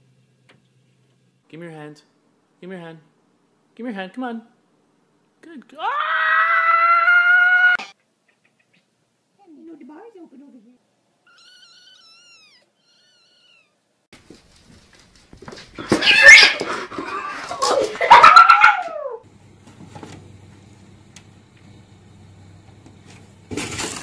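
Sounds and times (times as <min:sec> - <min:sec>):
cat caterwauling: 0:11.3 - 0:13.8, 0:16.0 - 0:19.2.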